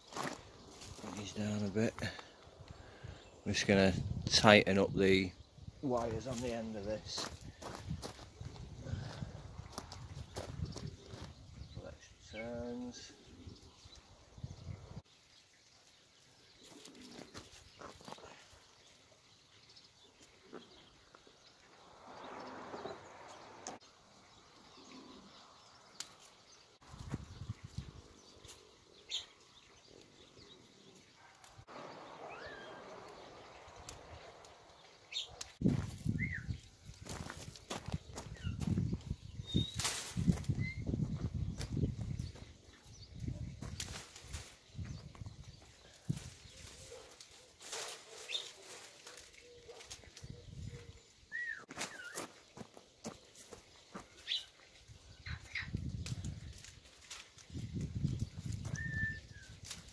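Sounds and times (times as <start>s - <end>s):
clicks and rustling of cane: 46.1s - 50.3s, 55.9s - 59.9s.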